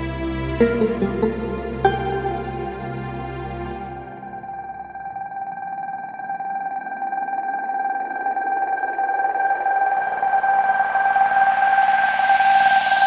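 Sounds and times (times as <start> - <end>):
high synthesizer tone: 0.6 - 7.4.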